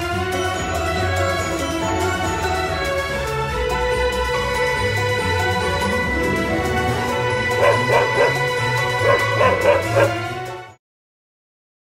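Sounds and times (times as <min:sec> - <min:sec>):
background music: 0:00.0 - 0:10.8
puppy yelping: 0:07.6 - 0:10.2.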